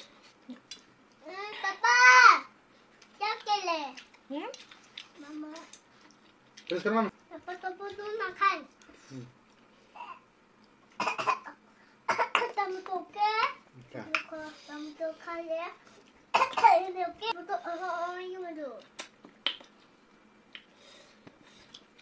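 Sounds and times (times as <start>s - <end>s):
young child speaking: 1.2s - 2.5s, 3.2s - 4.0s, 5.2s - 5.8s, 7.3s - 8.7s, 12.4s - 13.6s, 14.2s - 15.8s, 16.5s - 18.9s.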